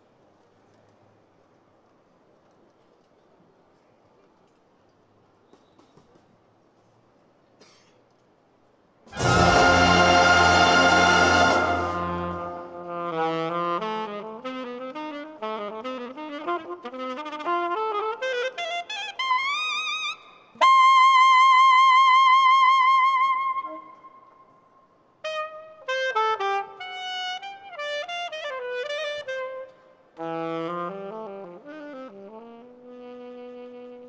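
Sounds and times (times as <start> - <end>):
wind band holding a chord: 9.1 - 13.3
alto saxophone solo: 9.1 - 24.5, 25.2 - 34.0.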